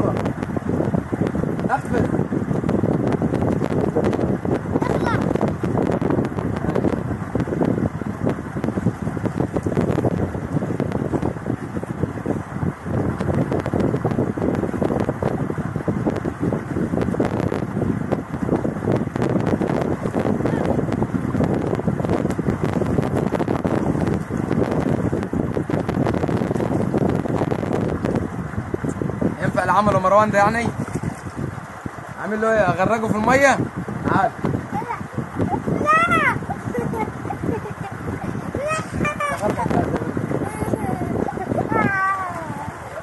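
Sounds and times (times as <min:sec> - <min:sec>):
water sloshing and splashing: 0:00.0 - 0:43.0
wind buffeting microphone: 0:00.0 - 0:43.0.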